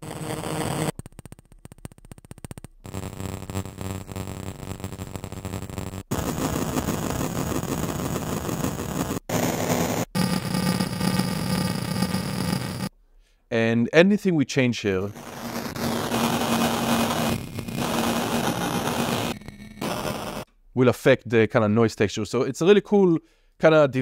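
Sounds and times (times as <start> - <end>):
harsh glitchy synth noise: 0.0 - 1.1, 2.8 - 12.9, 15.1 - 20.5.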